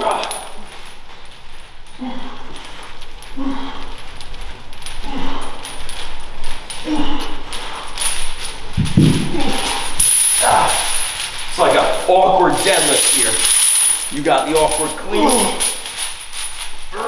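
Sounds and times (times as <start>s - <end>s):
steel chain jangling: 0.0s - 17.0s.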